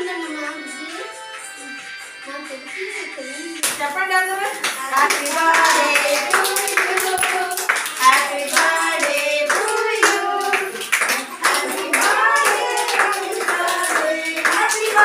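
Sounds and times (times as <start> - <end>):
hands clapping in time: 3.6 - 3.8, 4.5 - 15.0
women and children singing: 4.6 - 15.0.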